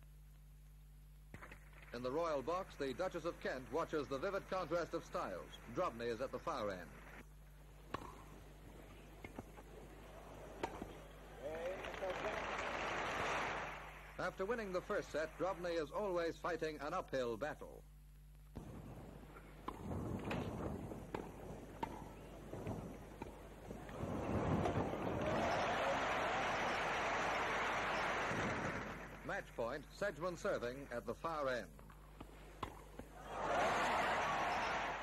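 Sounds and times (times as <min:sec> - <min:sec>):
tennis ball pocks: 0:07.8 - 0:09.8, 0:10.5 - 0:11.2, 0:19.3 - 0:25.5, 0:31.7 - 0:33.2
crowd noise: 0:08.7 - 0:15.5, 0:22.1 - 0:29.3, 0:33.1 - 0:35.0.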